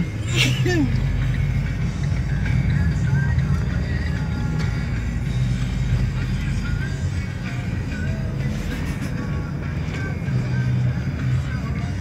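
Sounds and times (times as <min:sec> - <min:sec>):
engine and road rumble: 0:00.0 - 0:12.0
rock song on car radio: 0:00.0 - 0:12.0.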